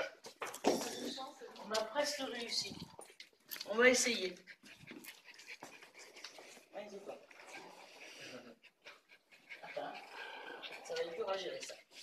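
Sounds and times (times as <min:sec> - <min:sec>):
small dog panting: 0:02.2 - 0:12.0.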